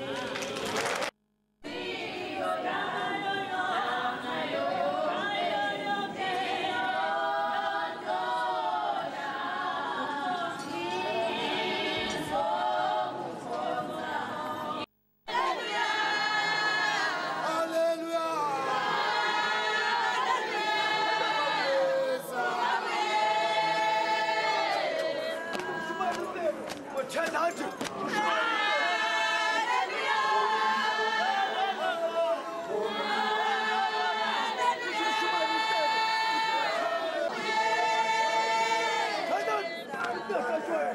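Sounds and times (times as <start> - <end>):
women's choir singing a hymn: 0.0 - 0.8, 1.6 - 17.8, 18.5 - 26.3, 28.0 - 40.9.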